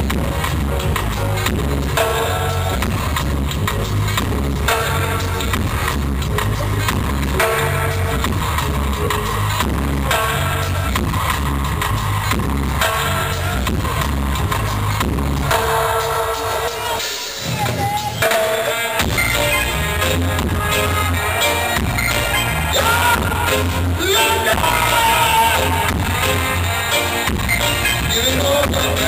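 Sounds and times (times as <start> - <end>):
reggae band through a pa: 0.0 - 29.0.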